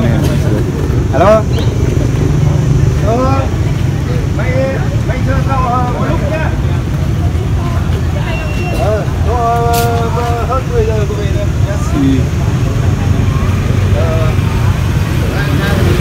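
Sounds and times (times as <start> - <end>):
steady low rumble: 0.0 - 8.0
people talking in background: 0.0 - 16.0.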